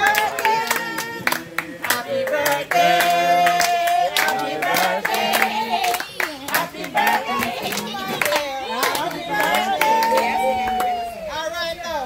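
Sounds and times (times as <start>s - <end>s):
hand clapping in time: 0.0s - 10.9s.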